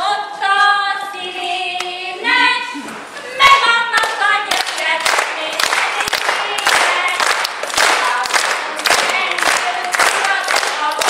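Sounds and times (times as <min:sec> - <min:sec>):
women singing together: 0:00.0 - 0:11.0
hands clapping in time: 0:04.0 - 0:11.0.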